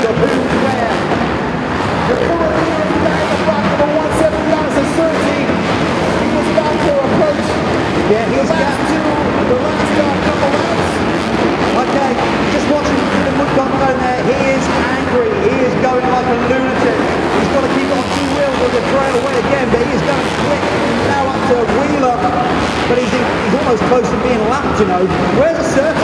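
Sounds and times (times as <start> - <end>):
motocross bike engines revving: 0.0 - 26.0.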